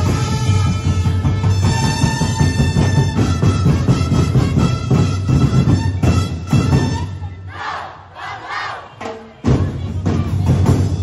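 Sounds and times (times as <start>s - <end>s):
group shouting in unison: 7.5s - 8.9s.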